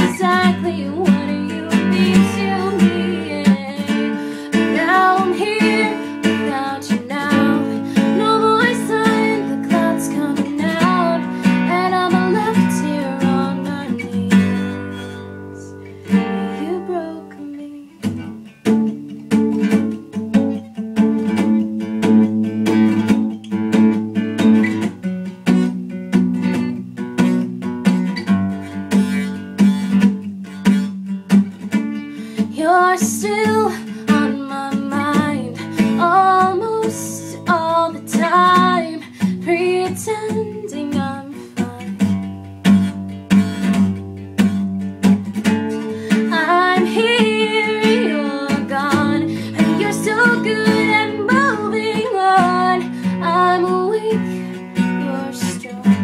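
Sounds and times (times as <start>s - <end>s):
woman singing: 0.0s - 18.3s, 32.4s - 42.4s, 45.4s - 56.0s
strummed acoustic guitar: 0.0s - 56.0s.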